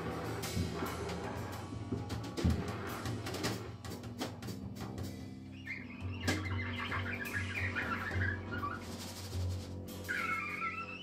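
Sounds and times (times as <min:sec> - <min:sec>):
drum or cymbal hit: 0:00.0 - 0:05.2
high wavering chirping line: 0:05.5 - 0:09.4, 0:10.0 - 0:11.0.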